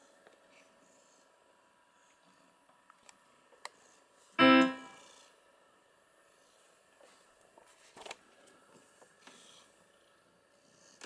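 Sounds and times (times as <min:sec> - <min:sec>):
electronic keyboard note: 0:04.4 - 0:05.1.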